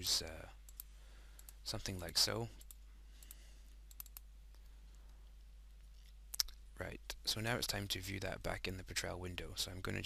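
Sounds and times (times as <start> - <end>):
low steady hum: 0.0 - 10.0
computer mouse clicks: 0.7 - 1.6, 2.6 - 4.7.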